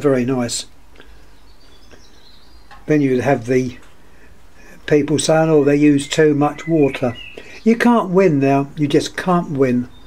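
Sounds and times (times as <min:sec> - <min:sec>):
high thin bird call: 0:06.0 - 0:07.6.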